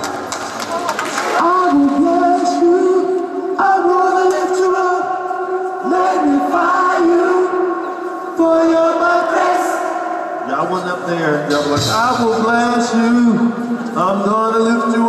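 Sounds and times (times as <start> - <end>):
choir singing held chords: 2.0 - 10.7.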